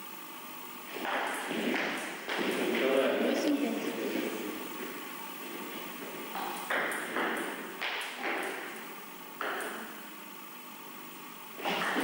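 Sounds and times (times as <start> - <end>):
table tennis ball bouncing: 1.0 - 2.8, 6.2 - 10.0, 11.6 - 12.0.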